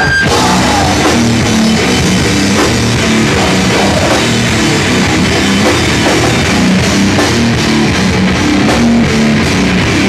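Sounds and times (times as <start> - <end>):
distorted electric guitar: 0.0 - 10.0
live heavy rock band: 0.0 - 10.0
pounding drum kit: 0.0 - 10.0.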